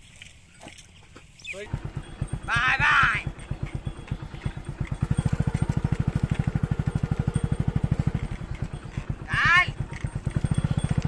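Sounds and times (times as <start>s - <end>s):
small engine running: 1.6s - 11.0s.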